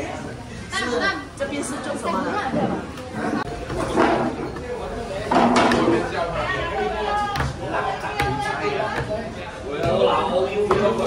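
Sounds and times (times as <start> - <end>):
chatter of many people talking: 0.0 - 11.0.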